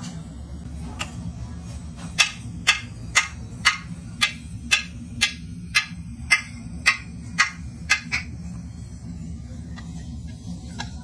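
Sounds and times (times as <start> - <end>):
bar striking metal casting: 2.1 - 8.3.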